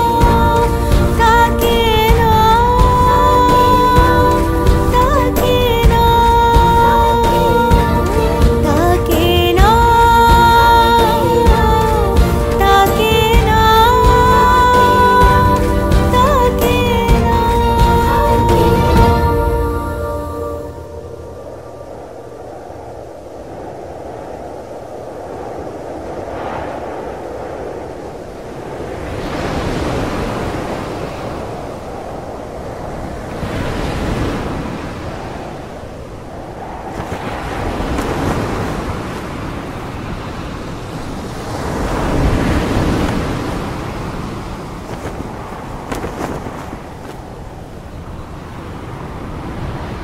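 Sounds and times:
sea surf breaking on beach: 0.0 - 50.0.

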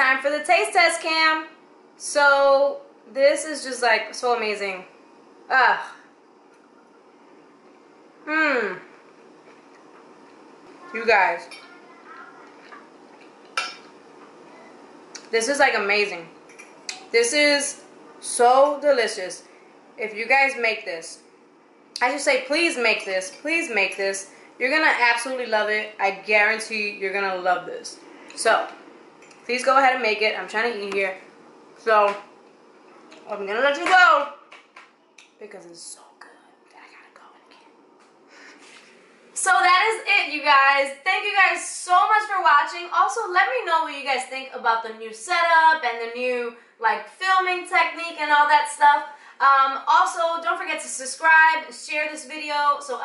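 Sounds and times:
woman whispering: 35.8 - 37.8.

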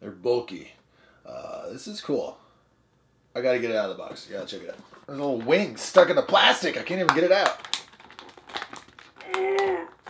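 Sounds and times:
plastic packaging crinkling: 4.2 - 10.0
person humming while straining: 9.2 - 10.0.

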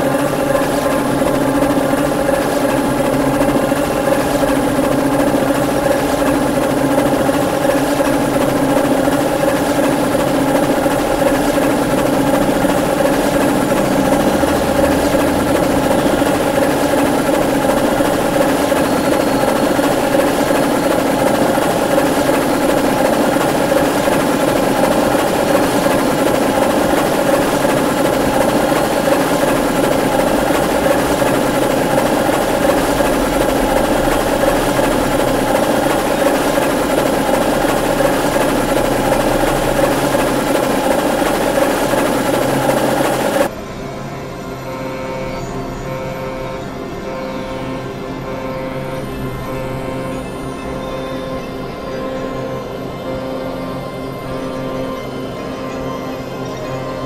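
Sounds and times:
electronic noise drone: 0.0 - 57.0.

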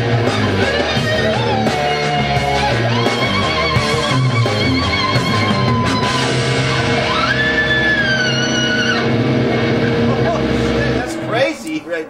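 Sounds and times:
rock music with talk box guitar: 0.0 - 12.0.

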